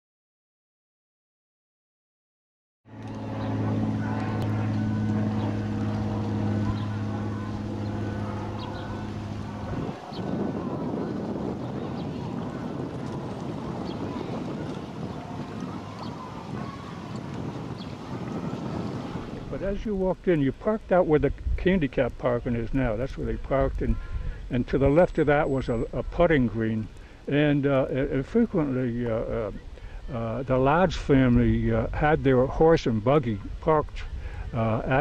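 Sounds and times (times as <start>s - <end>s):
low motor drone: 2.9s - 29.7s
wind noise on microphone: 2.9s - 35.0s.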